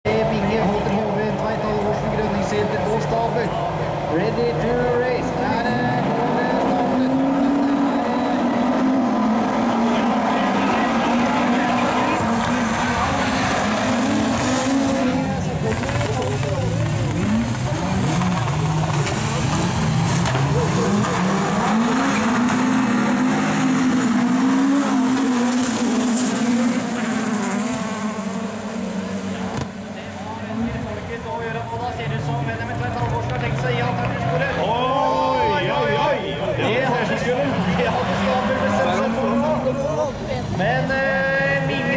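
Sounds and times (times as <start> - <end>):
racing car engines revving: 0.0 - 41.9.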